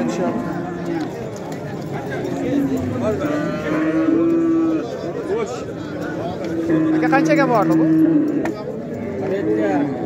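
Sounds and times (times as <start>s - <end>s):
cow mooing: 0.0s - 1.1s, 2.4s - 5.0s, 6.4s - 10.0s.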